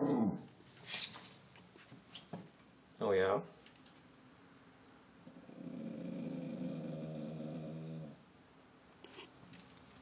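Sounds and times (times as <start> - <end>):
dog growling low: 0.0 - 0.5, 5.2 - 8.2.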